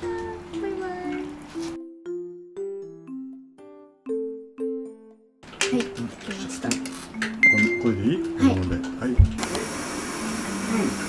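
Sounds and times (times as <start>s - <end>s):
kettle hissing steam: 9.4s - 11.0s.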